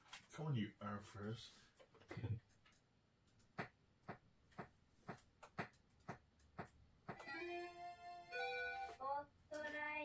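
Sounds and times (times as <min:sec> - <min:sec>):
music jingle: 0:07.3 - 0:09.0.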